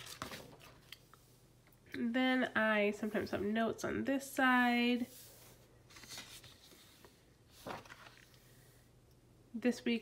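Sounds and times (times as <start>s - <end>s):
paper pages rustling: 0.0s - 1.0s, 5.8s - 8.6s.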